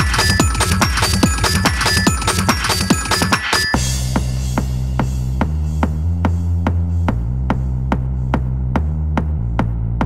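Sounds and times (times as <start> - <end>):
deep bass drone: 3.8 - 10.0.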